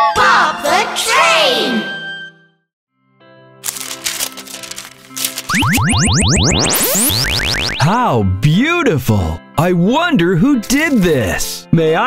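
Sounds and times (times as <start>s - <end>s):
rising synthesized chirps: 5.5s - 8.0s.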